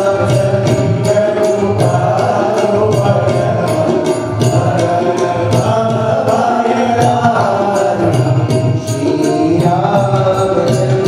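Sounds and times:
light percussion beat: 0.0 - 11.0.

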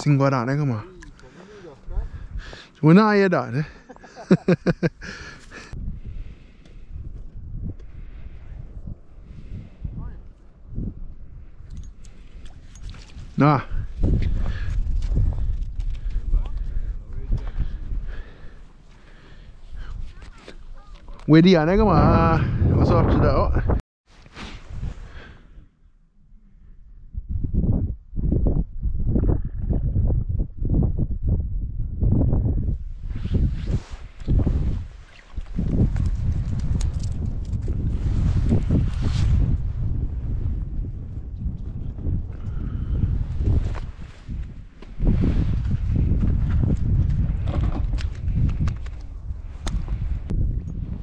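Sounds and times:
wind buffeting microphone: 1.7 - 2.7, 4.3 - 23.8, 26.5 - 51.0
clothing rubbing microphone: 33.0 - 36.5.

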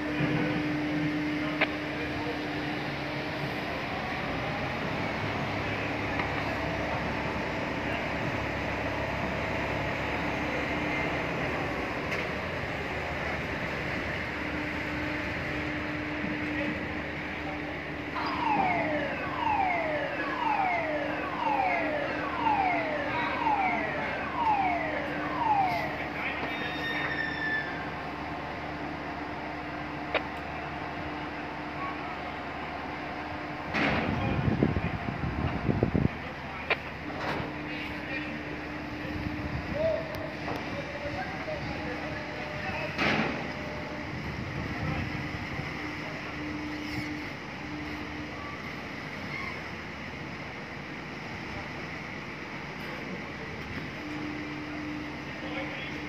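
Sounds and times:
crane machinery drone: 0.0 - 56.0.

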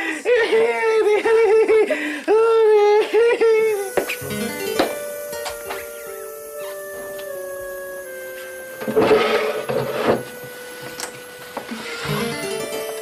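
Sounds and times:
person sobbing cry: 0.0 - 4.8
soft sustained background music: 3.6 - 13.0.

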